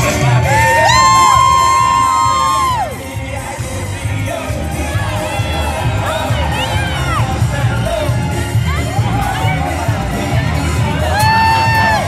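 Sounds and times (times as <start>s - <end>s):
parade music with bass beat: 0.0s - 12.0s
crowd cheering and whooping: 0.2s - 3.2s, 4.3s - 12.0s.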